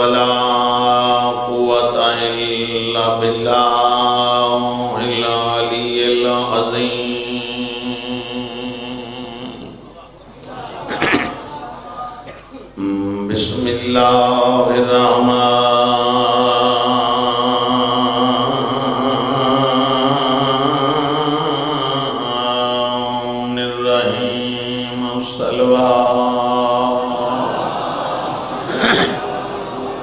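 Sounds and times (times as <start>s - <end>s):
man chanting: 0.0s - 27.3s.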